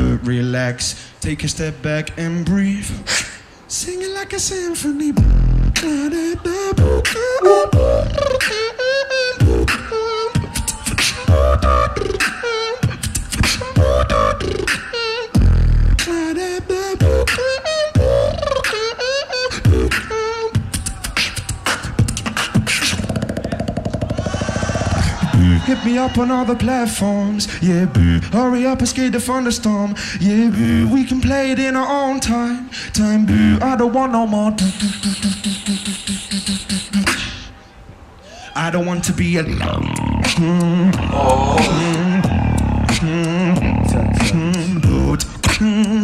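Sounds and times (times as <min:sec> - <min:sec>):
sung vocal melody: 0:02.2 - 0:20.5, 0:39.2 - 0:46.0
beatboxing: 0:02.5 - 0:37.5, 0:39.4 - 0:46.0.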